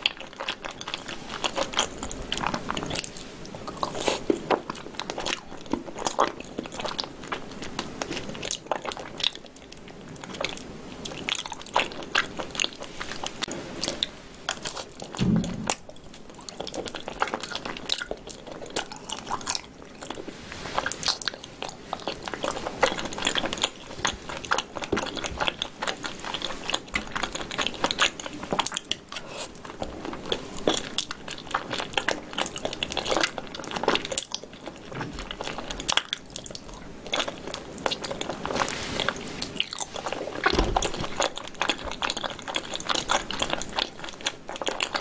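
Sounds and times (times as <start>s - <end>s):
wet chewing: 0.0s - 45.0s.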